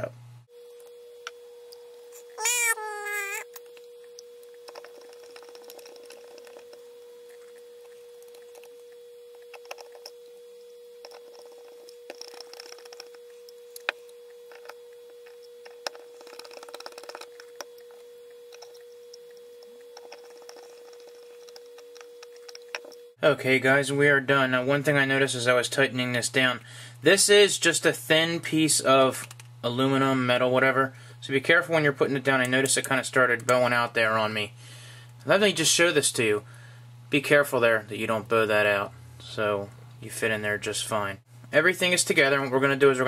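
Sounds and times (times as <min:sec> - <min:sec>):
steady hum: 0:00.0 - 0:43.0
high sped-up voice: 0:02.4 - 0:03.4.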